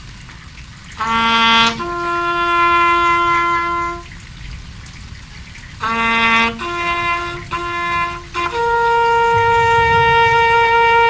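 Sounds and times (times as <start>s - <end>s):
bugle long held note: 1.0s - 4.2s, 5.8s - 11.0s.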